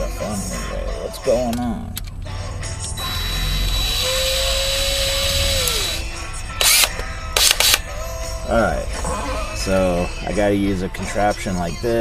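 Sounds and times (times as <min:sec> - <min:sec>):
cordless drill motor whine: 0:03.0 - 0:07.8.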